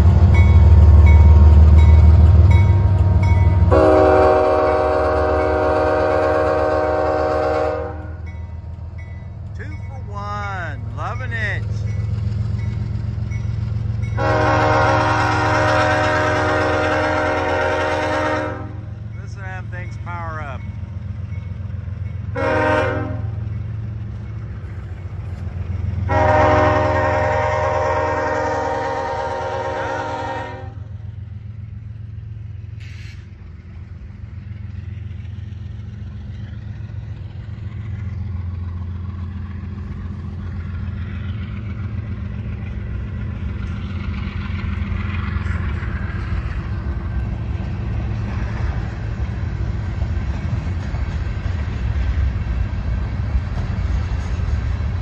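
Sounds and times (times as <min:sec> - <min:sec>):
passing freight train rumble: 0:00.0 - 0:55.0
locomotive air horn blasts: 0:03.6 - 0:08.2, 0:14.2 - 0:18.9, 0:22.4 - 0:23.4, 0:26.1 - 0:30.9.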